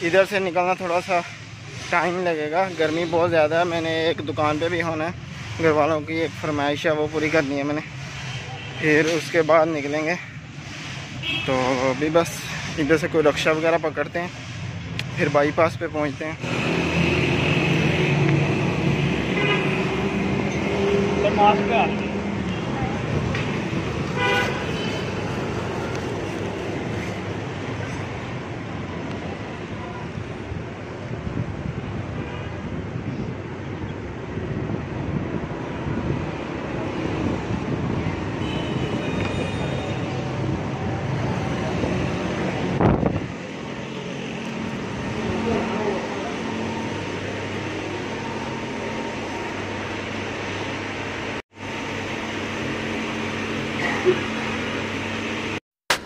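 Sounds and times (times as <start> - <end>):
street traffic noise: 0.0 - 56.0
vehicle horn toot: 19.3 - 20.0, 24.2 - 25.1, 38.4 - 40.1.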